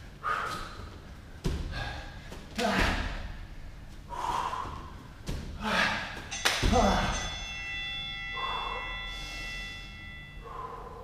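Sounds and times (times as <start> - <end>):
man breathing hard: 0.0 - 7.3, 8.3 - 11.0
ringing tone: 6.3 - 11.0.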